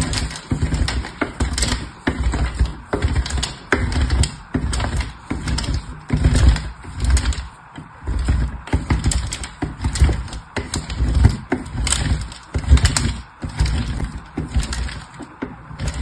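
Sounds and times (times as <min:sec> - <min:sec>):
soap scraping on grater: 0:00.0 - 0:16.0.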